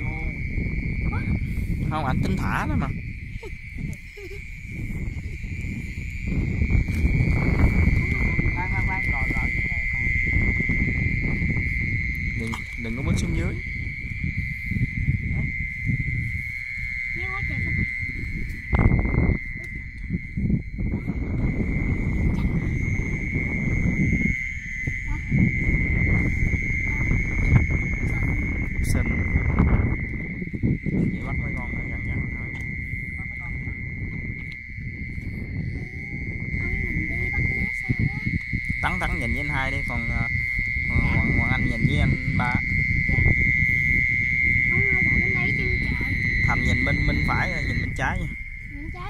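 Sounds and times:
frogs and insects chorus: 0.0 - 49.0
microphone handling rumble: 0.0 - 49.0.

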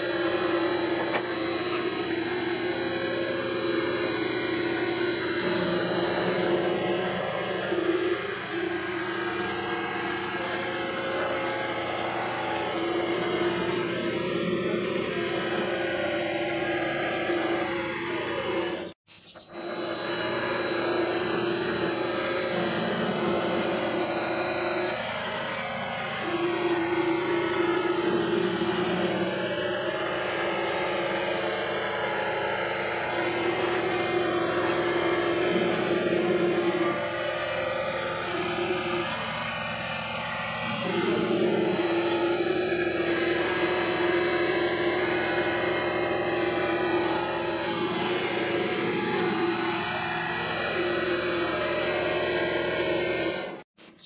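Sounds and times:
lathe motor hum: 0.0 - 53.7.

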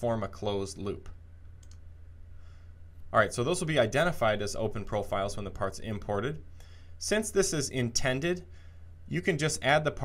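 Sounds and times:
steady low hum: 0.0 - 10.0
computer mouse clicking: 1.6 - 1.9.

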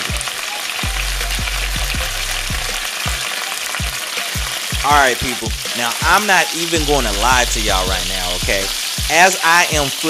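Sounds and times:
chicken sizzling in oil: 0.0 - 10.0
low thumping beat: 0.0 - 10.0
held bass note: 6.8 - 8.8.

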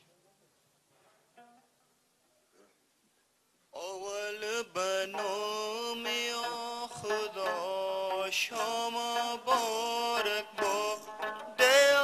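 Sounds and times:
person singing chant-like song: 3.8 - 12.0.

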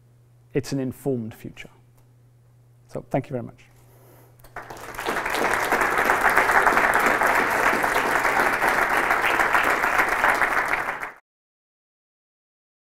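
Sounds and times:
audience applauding: 4.5 - 11.2.

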